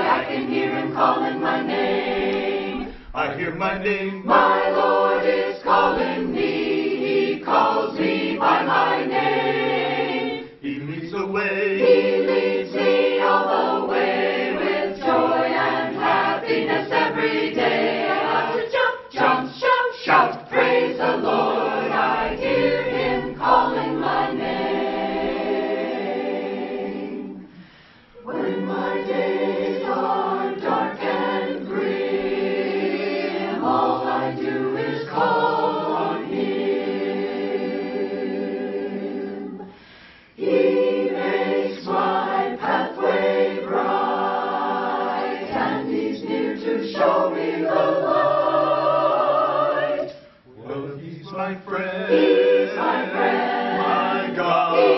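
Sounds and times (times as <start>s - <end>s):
church choir singing: 0.0s - 54.9s.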